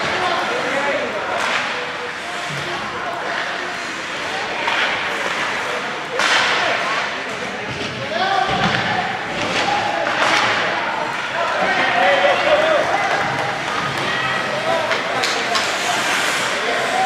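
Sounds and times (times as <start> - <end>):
puck banging against rink boards: 4.5 - 16.6.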